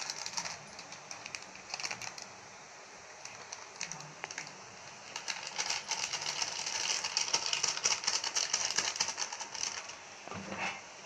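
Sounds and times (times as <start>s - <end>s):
hand mixing food in steel bowl: 3.3s - 10.0s.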